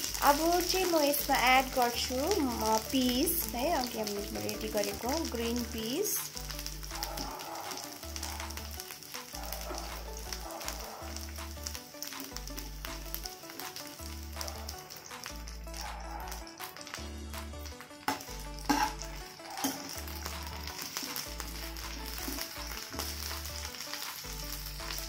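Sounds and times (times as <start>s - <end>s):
vegetables sizzling in a pan: 0.0s - 25.0s.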